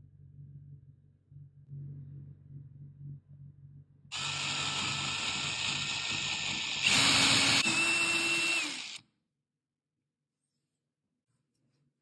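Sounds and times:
power drill boring into wood: 4.1s - 9.0s.

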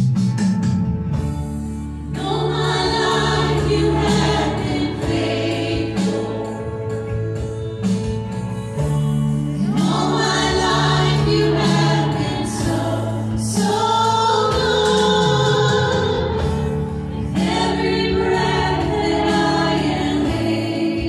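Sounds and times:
acoustic guitar and band: 0.0s - 21.0s
voices singing together: 2.1s - 7.1s, 9.6s - 21.0s.

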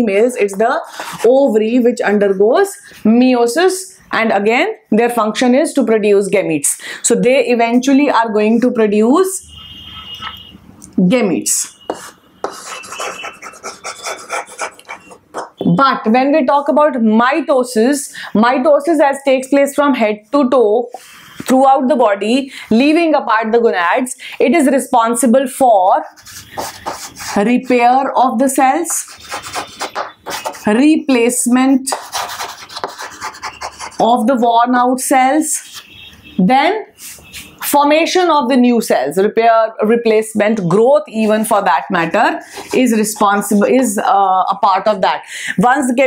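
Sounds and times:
chalk scraping on chalkboard: 0.8s - 1.5s, 9.6s - 10.5s, 11.6s - 15.6s, 26.0s - 30.9s, 31.5s - 34.3s, 35.5s - 36.2s, 37.0s - 37.6s, 42.4s - 43.4s.

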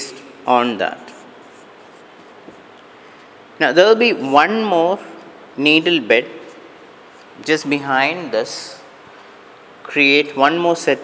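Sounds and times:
marker pen scratching on whiteboard: 1.0s - 2.7s.

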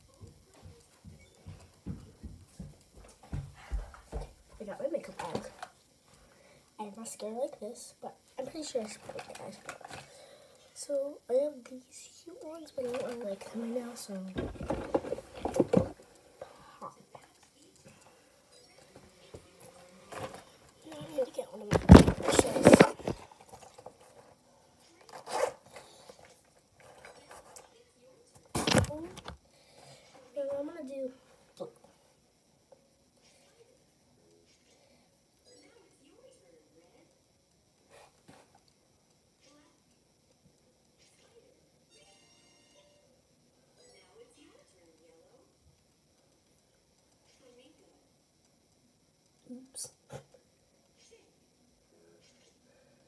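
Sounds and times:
footsteps thudding on floor: 0.2s - 4.4s
faint handling noise: 19.3s - 27.7s.

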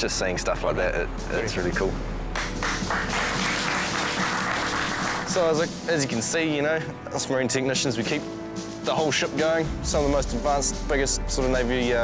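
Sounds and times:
people applauding: 2.3s - 5.6s.

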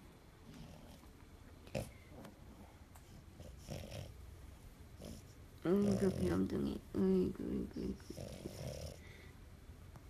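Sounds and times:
dog snorting: 0.5s - 1.1s, 1.7s - 2.1s, 3.1s - 4.2s, 5.0s - 6.5s, 7.9s - 9.2s.

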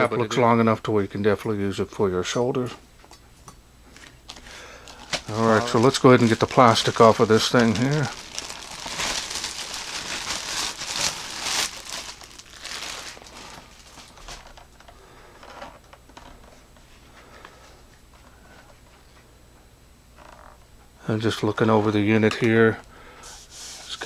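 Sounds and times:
plastic bag crinkling: 4.3s - 14.7s.

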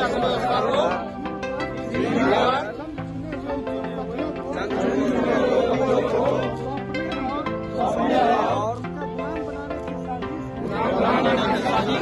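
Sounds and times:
men reciting together: 0.0s - 1.1s, 1.8s - 2.9s, 4.5s - 6.6s, 7.7s - 8.7s, 10.6s - 12.0s
instrumental music with sustained notes: 0.0s - 12.0s.

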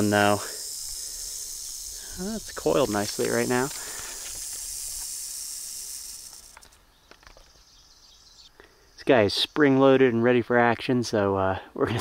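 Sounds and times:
rattlesnake rattling: 0.0s - 9.1s.

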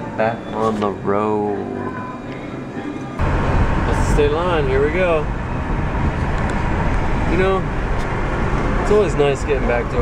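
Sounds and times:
road and tyre noise in car: 3.0s - 10.0s.

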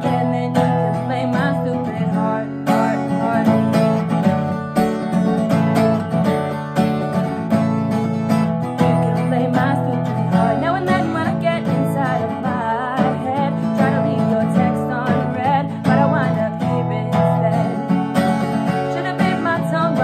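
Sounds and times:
acoustic guitar strumming: 0.0s - 20.0s
woman singing: 0.0s - 20.0s.

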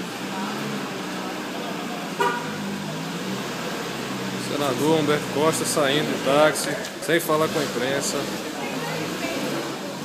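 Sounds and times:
car horn toot: 2.2s - 2.6s.

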